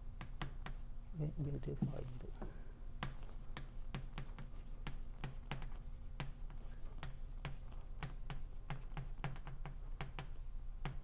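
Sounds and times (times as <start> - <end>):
chalk clicking on a blackboard: 0.2 - 0.9, 3.0 - 11.0.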